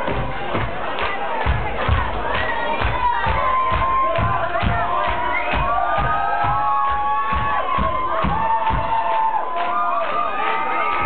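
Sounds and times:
amplified beat thumping: 0.0s - 9.1s
crowd cheering and shouting: 0.0s - 11.0s.

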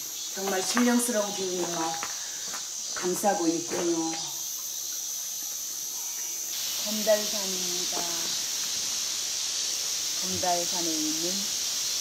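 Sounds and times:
insects chorus: 0.0s - 12.0s.

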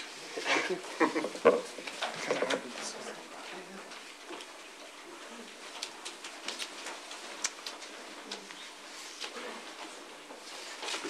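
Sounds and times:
papers rustling: 5.5s - 11.0s.

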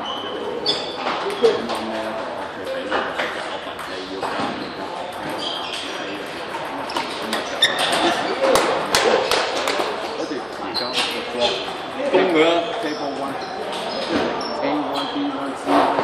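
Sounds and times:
voices echoing in hall: 0.0s - 16.0s.

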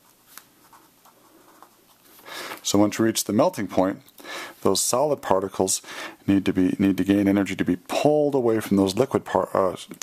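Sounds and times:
pen scratching on paper: 0.0s - 2.0s.

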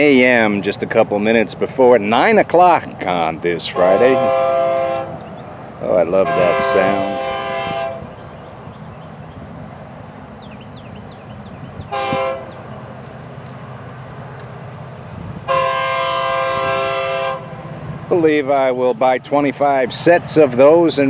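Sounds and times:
train rumble: 0.0s - 21.0s
locomotive air horn blasts: 3.7s - 5.2s, 6.1s - 8.2s, 11.8s - 12.6s, 15.4s - 17.6s.

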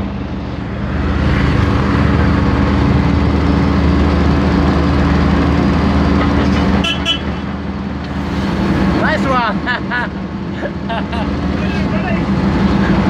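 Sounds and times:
traffic engines droning: 0.0s - 13.0s.

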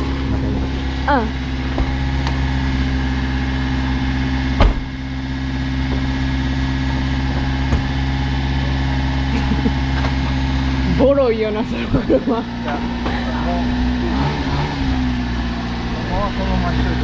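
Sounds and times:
vehicle engine idling: 0.0s - 17.0s.

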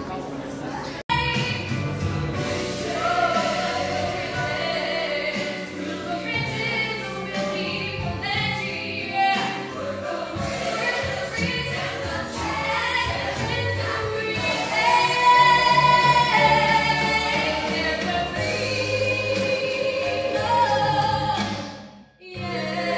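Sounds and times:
backing music: 1.1s - 22.9s.

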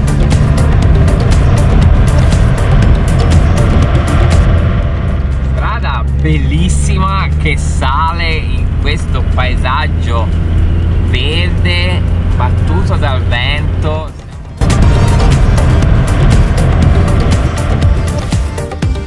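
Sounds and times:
music with a steady beat: 0.0s - 6.2s, 14.3s - 19.0s
road noise inside vehicle: 0.0s - 18.7s
van engine droning: 0.0s - 19.0s.

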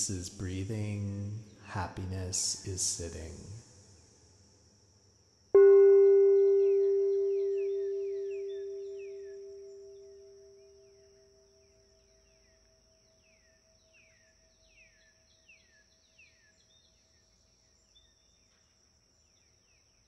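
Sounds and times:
steady high hiss: 0.0s - 11.6s
meditation bell ringing: 5.6s - 11.1s.

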